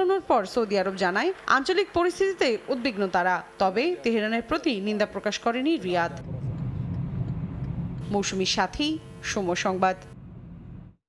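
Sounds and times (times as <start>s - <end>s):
car engine and road rumble: 6.2s - 8.1s, 10.2s - 11.0s.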